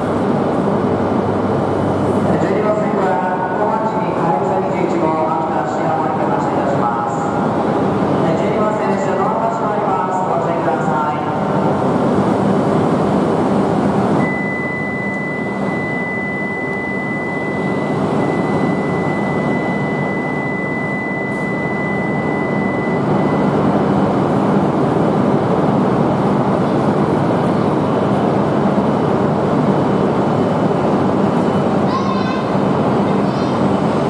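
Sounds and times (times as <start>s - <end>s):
train moving with low hum: 0.0s - 34.0s
steady high-pitched tone: 14.2s - 23.6s.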